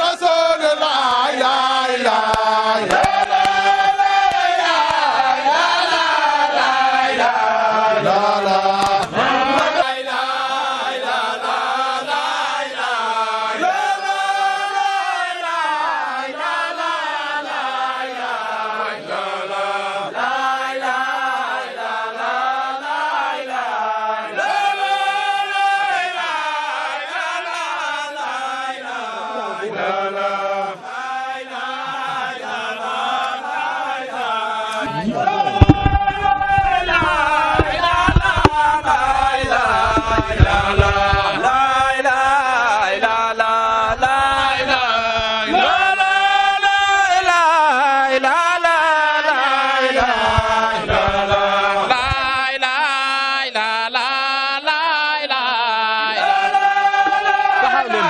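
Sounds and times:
men chanting together: 0:00.0 - 0:58.0.

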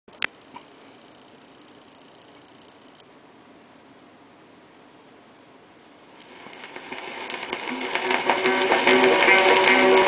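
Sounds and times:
record surface hiss: 0:00.1 - 0:10.0
plucked banjo and guitar: 0:07.4 - 0:10.0.

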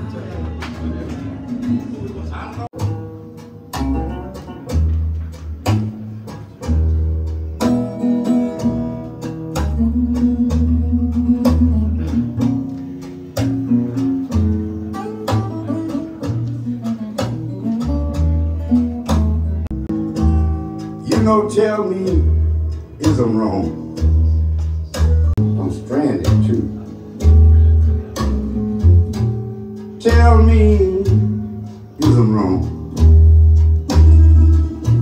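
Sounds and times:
deep slow bass line: 0:00.0 - 0:35.0
instrumental guitar music: 0:00.0 - 0:35.0.

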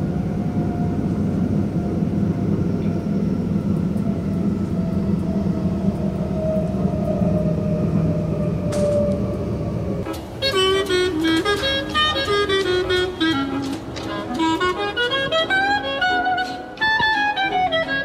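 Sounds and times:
faint wavering whine: 0:00.0 - 0:12.4
train rumbling on tracks: 0:00.0 - 0:18.0.

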